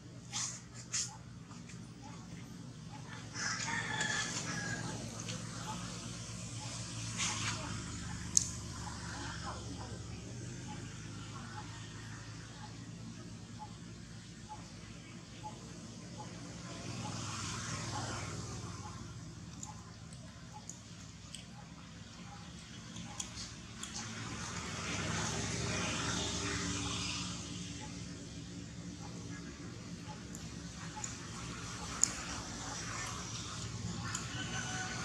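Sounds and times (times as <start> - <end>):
vehicle passing by: 2.3 - 35.0
rooster crowing: 3.2 - 5.2, 34.0 - 35.0.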